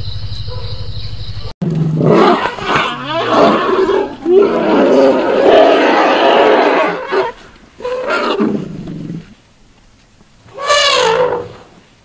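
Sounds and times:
elephant calling: 0:01.7 - 0:09.2, 0:10.5 - 0:11.6.

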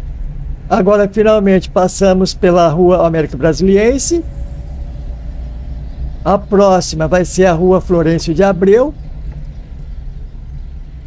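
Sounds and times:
car engine and tyre rumble: 0:00.0 - 0:11.0.

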